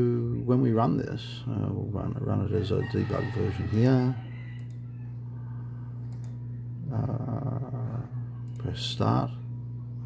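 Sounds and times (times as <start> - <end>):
low hum: 3.6 - 10.0
computer mouse clicks: 4.6 - 4.8, 6.0 - 6.4.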